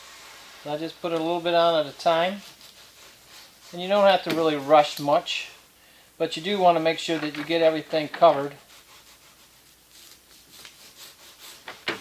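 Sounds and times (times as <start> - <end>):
hand roller wet rubbing: 0.0 - 5.5, 6.2 - 12.0.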